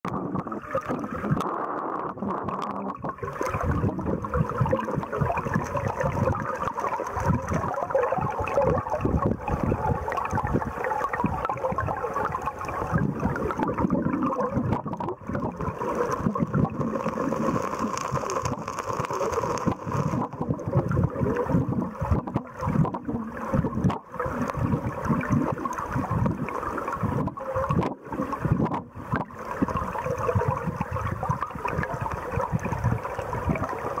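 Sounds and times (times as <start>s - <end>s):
stream water rushing underwater: 0.0s - 34.0s.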